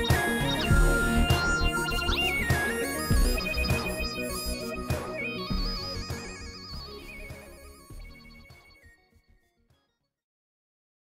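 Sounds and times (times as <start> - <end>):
bass: 0.0 - 8.9
wavering synth lead: 0.0 - 9.2.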